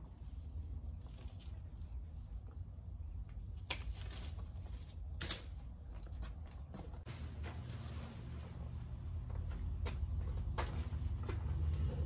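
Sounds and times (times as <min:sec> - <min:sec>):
tree foliage rustling: 0:03.5 - 0:06.4.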